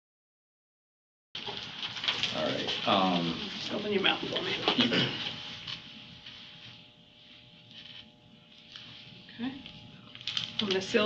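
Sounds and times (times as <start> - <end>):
faint electrical hum: 1.4 - 11.0.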